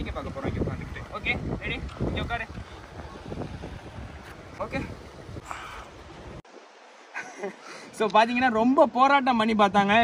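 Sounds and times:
wind rumbling on microphone: 0.0s - 6.4s.

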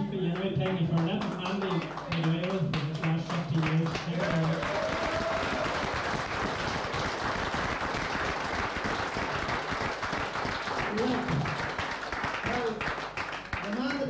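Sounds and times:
audience applauding: 0.3s - 14.0s.

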